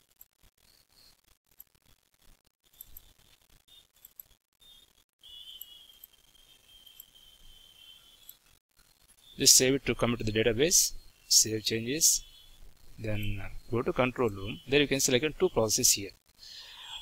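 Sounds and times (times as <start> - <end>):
faint high-pitched whine: 4.6 - 17.0.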